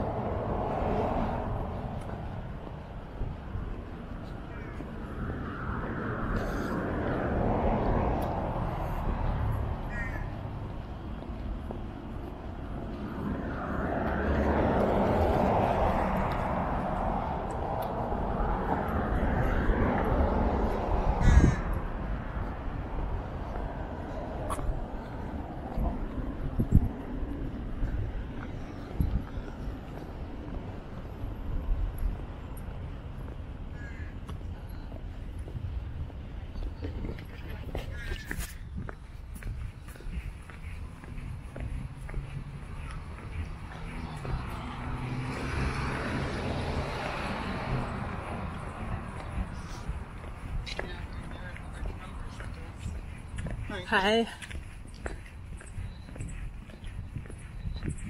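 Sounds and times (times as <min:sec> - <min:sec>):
passing vehicle rushing: 0:12.0 - 0:31.5, 0:41.2 - 0:53.8.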